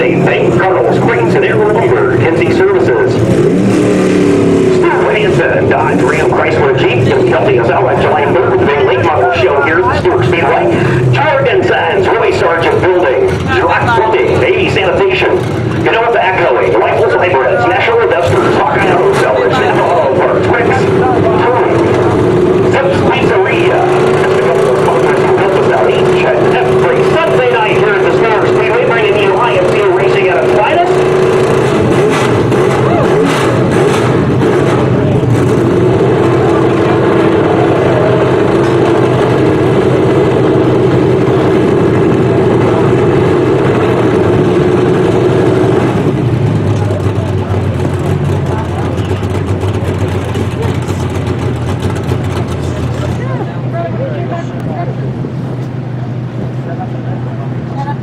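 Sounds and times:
people talking: 0:00.0 - 0:03.2, 0:04.7 - 0:22.1, 0:22.7 - 0:31.0, 0:32.8 - 0:33.3, 0:46.6 - 0:51.2, 0:52.4 - 0:55.2, 0:56.0 - 0:58.0
car engine idling: 0:00.0 - 0:58.0.

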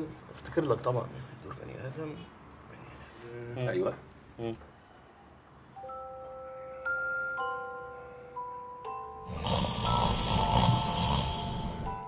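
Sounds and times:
soft chiming music: 0:05.8 - 0:12.0
man snoring: 0:09.2 - 0:12.0.

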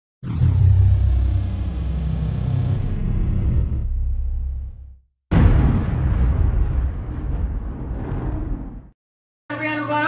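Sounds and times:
deep low rumble: 0:00.3 - 0:08.9.

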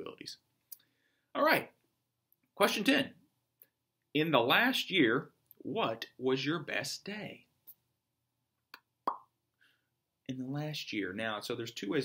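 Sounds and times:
wet lip pop: 0:08.7 - 0:09.3.

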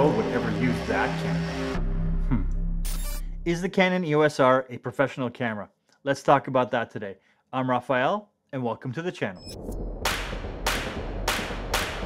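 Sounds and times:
low rumble: 0:00.0 - 0:03.6, 0:09.4 - 0:12.0.

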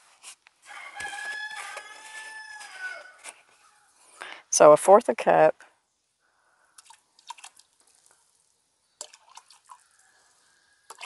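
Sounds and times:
rooster crowing: 0:00.6 - 0:03.9.

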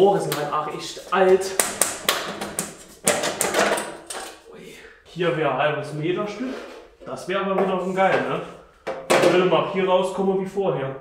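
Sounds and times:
sharp knocks on metal ducting: 0:01.6 - 0:04.0.

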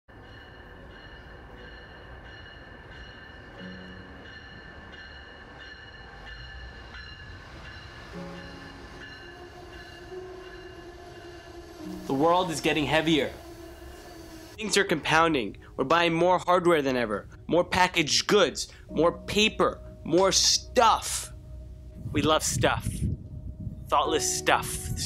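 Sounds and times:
train rumble: 0:00.1 - 0:15.9
high-pitched whining tones: 0:00.9 - 0:14.6.

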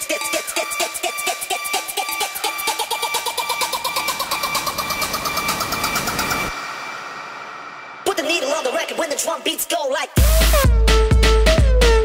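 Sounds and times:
rushing noise sweep: 0:03.7 - 0:09.4.

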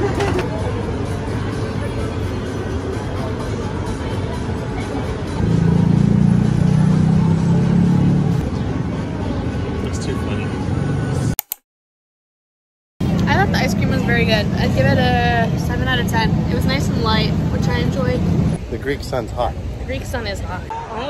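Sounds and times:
street traffic noise: 0:00.0 - 0:11.4, 0:13.0 - 0:21.0.

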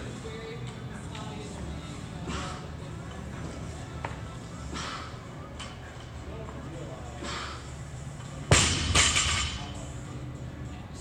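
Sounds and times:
loud impacts: 0:08.5 - 0:09.8.

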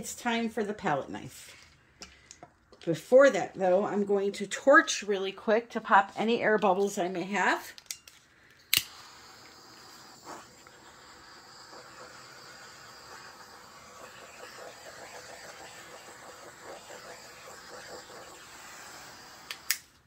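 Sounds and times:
torch clicking alight: 0:08.6 - 0:20.0
torch flame hissing: 0:08.7 - 0:19.8.

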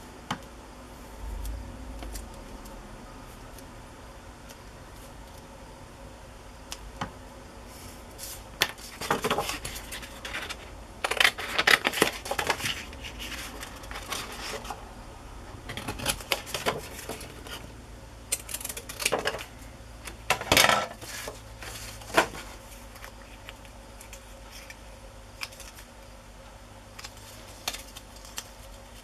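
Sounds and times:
paper rustling: 0:07.8 - 0:14.8, 0:20.8 - 0:25.9, 0:27.0 - 0:29.0.

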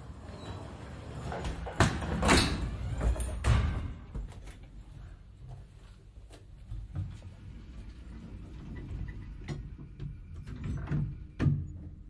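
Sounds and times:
door moving: 0:00.2 - 0:04.5.

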